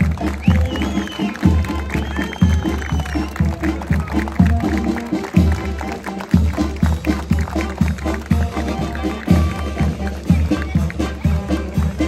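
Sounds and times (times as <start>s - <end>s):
brass band playing a march: 0.0s - 12.0s.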